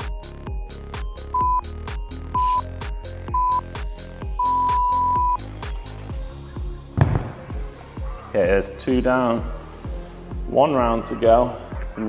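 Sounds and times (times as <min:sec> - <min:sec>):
electronic music with steady beat: 0:00.0 - 0:12.0
timer beeps: 0:01.3 - 0:01.7, 0:02.3 - 0:02.6, 0:03.3 - 0:03.6, 0:04.4 - 0:05.4
loud thump: 0:07.0 - 0:07.7.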